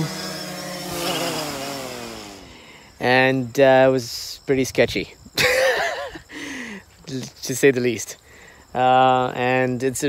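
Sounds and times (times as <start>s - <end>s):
drone propellers buzzing: 0.0s - 3.6s.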